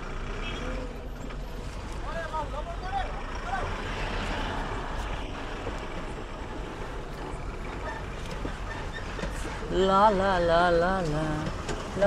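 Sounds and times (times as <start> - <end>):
heavy truck engines rumbling: 0.0 - 12.0
traffic noise rushing: 0.0 - 12.0.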